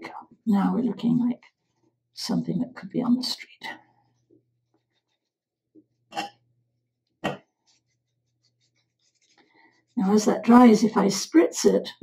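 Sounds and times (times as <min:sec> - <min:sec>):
paintbrush scratching on paper: 0:01.0 - 0:02.0, 0:04.0 - 0:05.6, 0:07.4 - 0:11.4.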